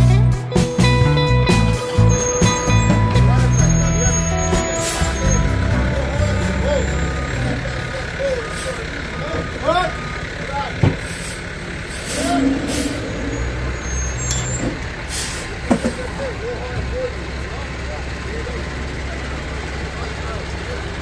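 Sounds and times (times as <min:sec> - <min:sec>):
diesel engine running: 0:00.0 - 0:21.0
air hissing: 0:11.0 - 0:16.0.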